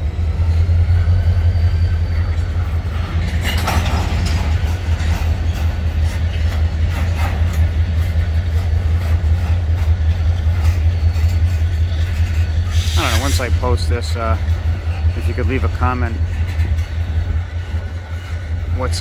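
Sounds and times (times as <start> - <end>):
freight cars rolling on rails: 0.0 - 19.0
faint high wheel squeal: 0.4 - 3.8
freight car clatter: 3.2 - 5.6.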